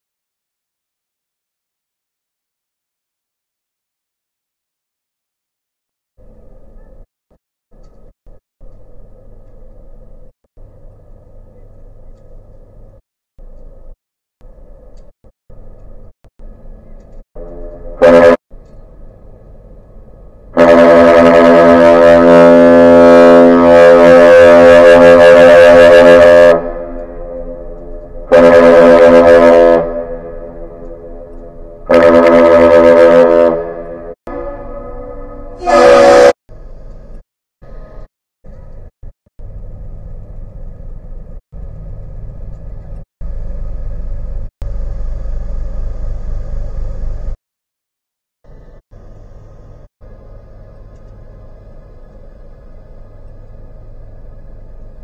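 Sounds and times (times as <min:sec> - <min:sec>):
ship diesel engine rumble: 0:14.5 - 0:34.8, 0:35.6 - 0:47.3
ship horn blasts: 0:17.4 - 0:18.4, 0:20.4 - 0:36.4.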